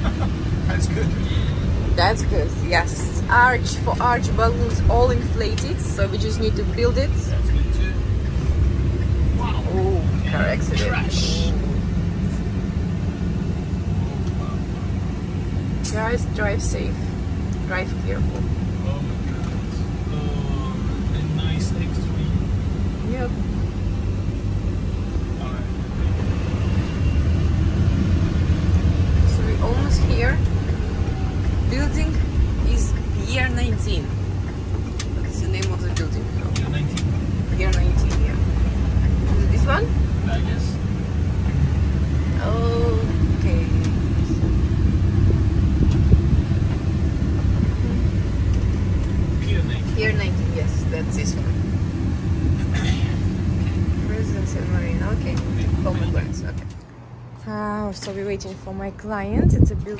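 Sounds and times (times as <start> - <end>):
truck engine and road noise: 0.0 - 59.9.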